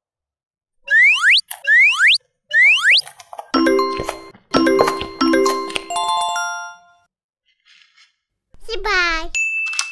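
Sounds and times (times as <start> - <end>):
chime-like musical jingle: 3.6 - 7.1.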